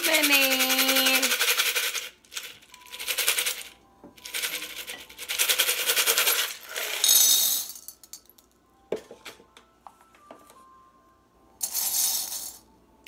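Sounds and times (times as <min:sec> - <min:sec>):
metal charms rattling in a cup: 0:00.0 - 0:08.3, 0:11.6 - 0:12.6
charms clattering into a bowl: 0:00.1 - 0:08.5, 0:11.6 - 0:12.7.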